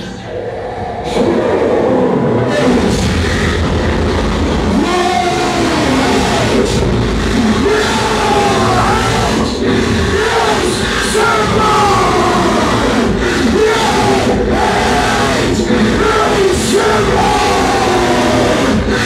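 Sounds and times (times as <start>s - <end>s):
harsh electronic noise: 0.0s - 19.0s.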